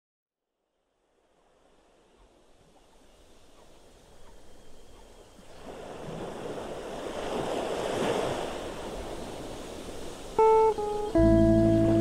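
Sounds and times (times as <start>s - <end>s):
wind: 0.5s - 12.0s
waves washing: 1.2s - 12.0s.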